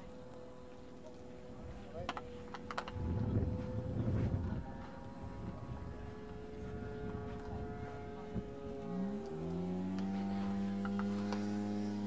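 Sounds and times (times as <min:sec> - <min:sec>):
low rumble: 0:02.8 - 0:10.4.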